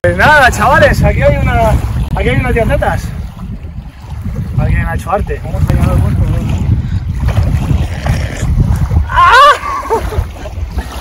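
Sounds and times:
waves lapping at shoreline: 0:00.0 - 0:11.0
wind buffeting microphone: 0:00.0 - 0:11.0.

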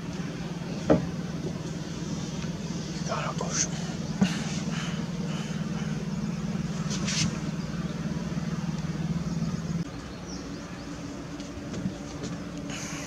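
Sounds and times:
engine humming: 0:00.0 - 0:13.0
fainter higher hum: 0:00.0 - 0:13.0.

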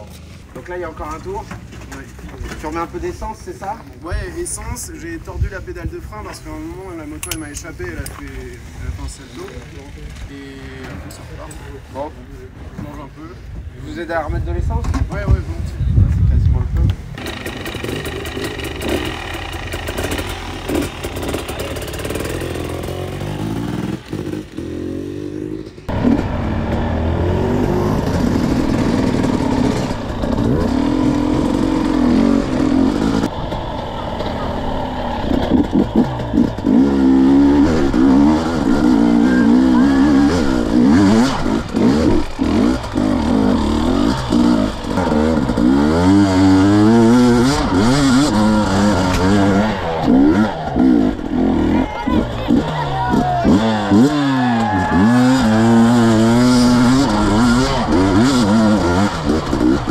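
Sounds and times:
motorcycle engine revving: 0:17.1 - 0:59.9.

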